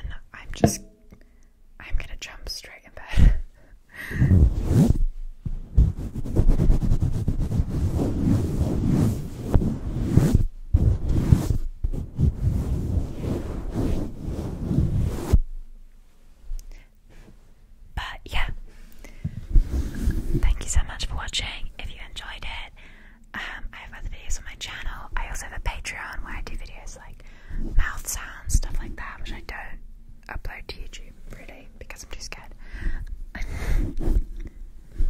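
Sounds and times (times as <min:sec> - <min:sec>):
deep thumps on microphone: 0:00.5 - 0:01.0, 0:04.1 - 0:07.7
sharp taps on microphone: 0:00.6 - 0:01.0
hands rubbing microphone grille: 0:04.2 - 0:15.4, 0:19.3 - 0:20.8, 0:33.5 - 0:35.0.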